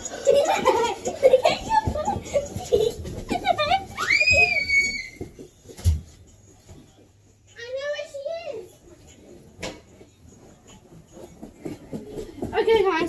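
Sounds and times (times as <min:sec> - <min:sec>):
children laughing and shrieking: 0:00.0 - 0:05.3.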